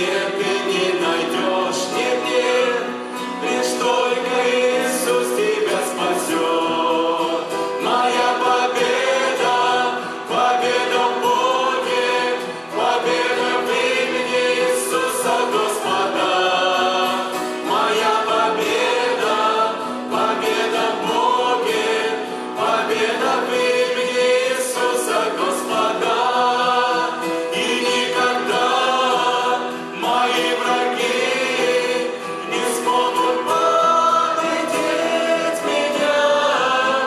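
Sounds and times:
group singing worship song: 0.0 - 37.0.

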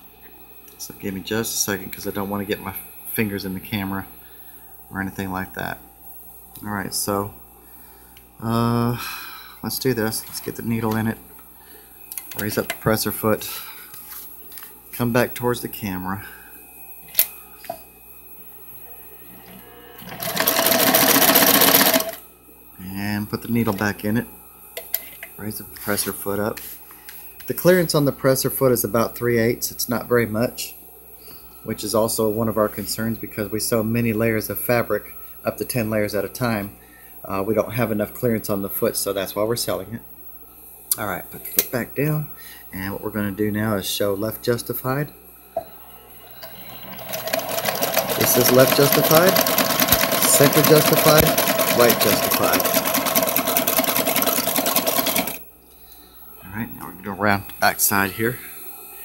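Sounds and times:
sewing machine running: 19.5 - 22.2, 46.2 - 55.4.

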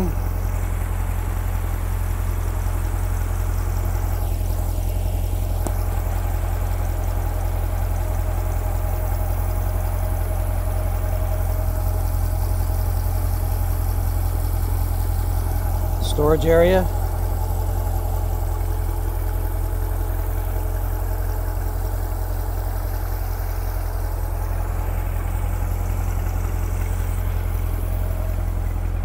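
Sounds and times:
car engine idling: 0.0 - 29.0.

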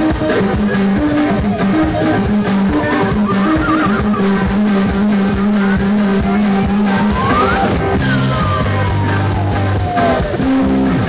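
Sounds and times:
live cumbia band: 0.0 - 11.0
warbling high line: 0.8 - 10.7
rising glide: 1.1 - 11.0.

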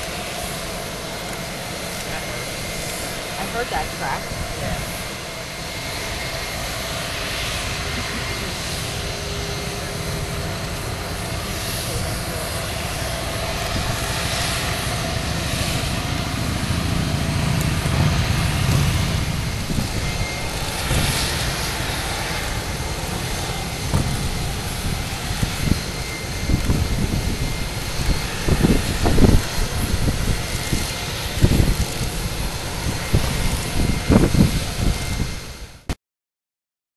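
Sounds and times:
jet aircraft noise: 0.0 - 36.0
low rumbles: 0.2 - 35.2.

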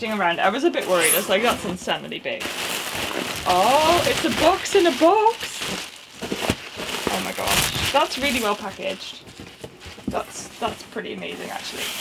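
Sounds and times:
plastic wrap crinkling: 2.3 - 12.0.

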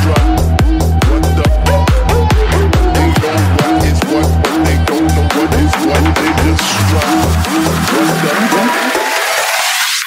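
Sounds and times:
kick drum and bass: 0.0 - 9.3
dance music build-up: 0.0 - 10.0.

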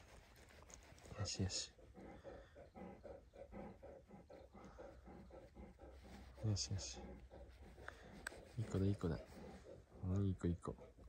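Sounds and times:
dog panting softly: 0.0 - 11.0.

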